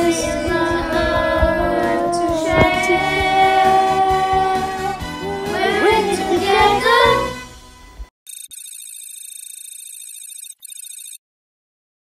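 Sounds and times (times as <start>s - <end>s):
children's choir singing: 0.0s - 7.5s
fast-trilling electronic ring: 8.3s - 11.2s.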